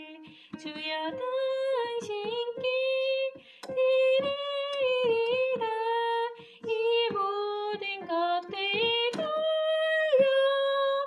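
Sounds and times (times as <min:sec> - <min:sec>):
woman singing a hymn: 0:00.0 - 0:11.0
breath: 0:00.2 - 0:00.6, 0:03.4 - 0:03.7, 0:06.4 - 0:06.7.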